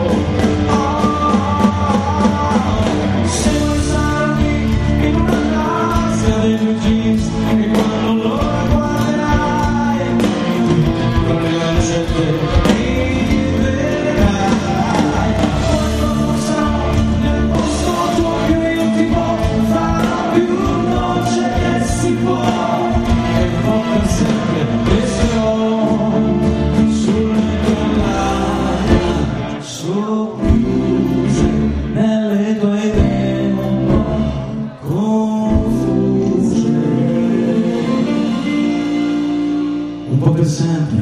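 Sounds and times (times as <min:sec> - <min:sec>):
drums keeping a steady beat: 0:00.0 - 0:29.6, 0:30.4 - 0:40.2
electric guitars: 0:00.0 - 0:41.0
keyboard: 0:00.0 - 0:41.0
person singing: 0:00.0 - 0:41.0.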